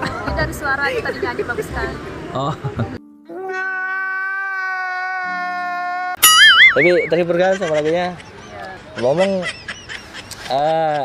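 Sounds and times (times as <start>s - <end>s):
low tone: 6.2s - 7.4s.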